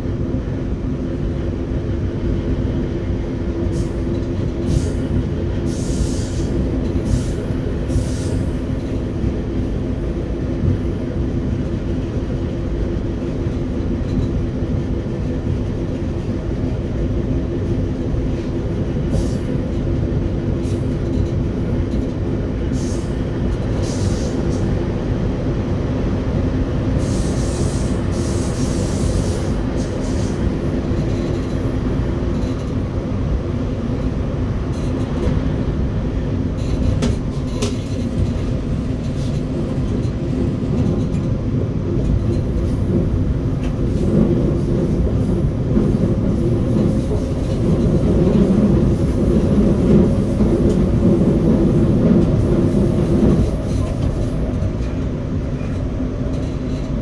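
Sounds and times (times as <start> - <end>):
train wheels rumbling on rail: 0.0 - 57.0.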